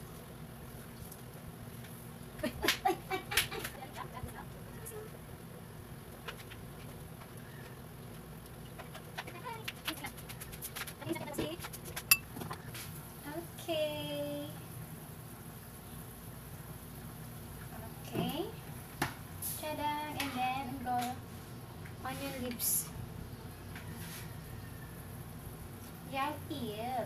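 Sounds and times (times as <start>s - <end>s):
pot of soup boiling: 5.2s - 9.2s.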